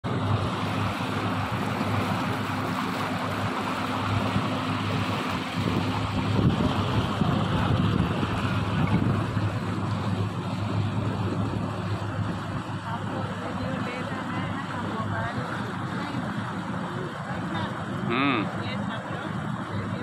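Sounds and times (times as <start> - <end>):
boat engine hum: 0.0 - 20.0
water rushing along hull: 0.0 - 20.0
wind buffeting microphone: 0.1 - 18.0.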